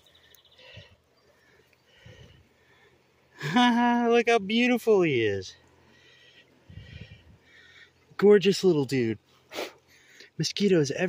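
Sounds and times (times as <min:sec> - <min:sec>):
distant high-pitched bird calls: 0:00.0 - 0:03.4.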